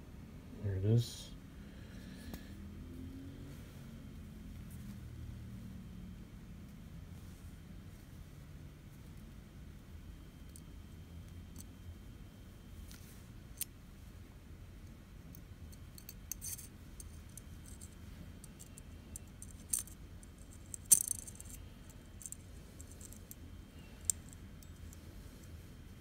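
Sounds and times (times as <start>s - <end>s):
lighter metallic clicks and rattles: 20.7s - 21.6s.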